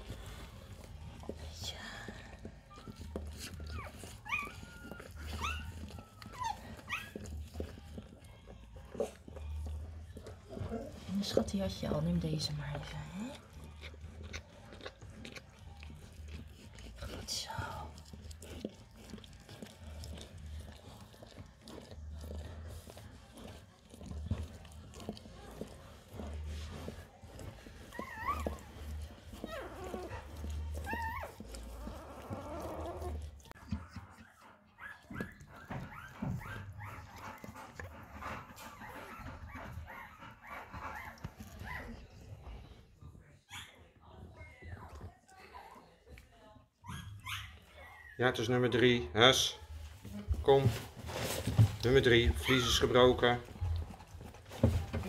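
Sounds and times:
dog licking: 0.0s - 43.3s, 48.3s - 55.0s
puppy squeaking: 2.7s - 8.3s, 27.4s - 37.4s, 46.8s - 48.2s, 52.2s - 53.2s.

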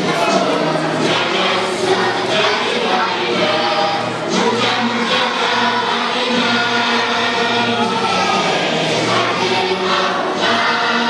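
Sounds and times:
children singing in chorus: 0.0s - 11.0s
music: 0.0s - 11.0s.

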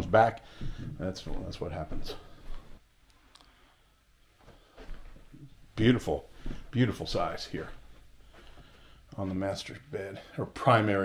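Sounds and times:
man talking: 0.0s - 2.4s, 5.8s - 7.8s, 9.1s - 11.0s
faint clicks: 3.0s - 3.6s.

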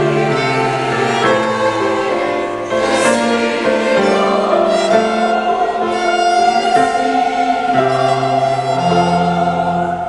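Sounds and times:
church choir singing: 0.0s - 10.0s.

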